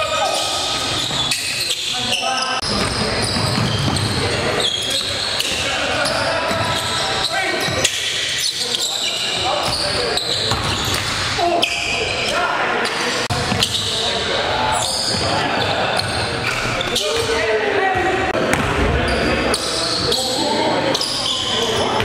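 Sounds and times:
players calling out: 0.0s - 22.0s
basketball bouncing on gym floor: 10.5s - 11.2s, 18.4s - 19.0s.

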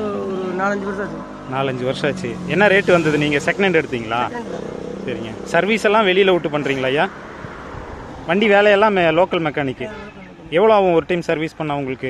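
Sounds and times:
man talking: 0.0s - 4.3s, 5.1s - 7.1s, 8.3s - 12.0s.

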